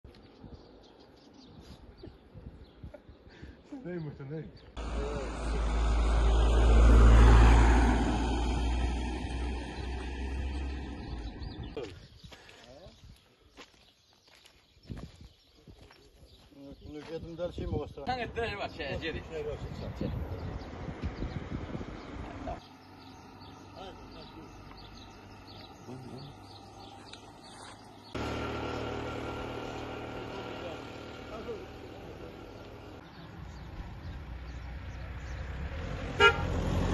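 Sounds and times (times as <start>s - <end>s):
vehicle passing by: 4.8s - 11.8s, 18.8s - 36.9s.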